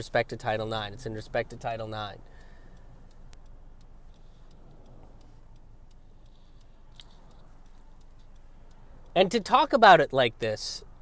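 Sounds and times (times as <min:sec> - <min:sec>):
car turn signal ticking: 0:00.0 - 0:11.0
faint road rumble: 0:00.0 - 0:11.0.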